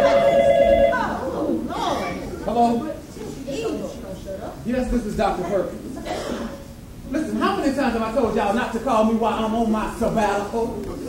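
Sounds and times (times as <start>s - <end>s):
phone ringing two-tone: 0.0s - 1.2s.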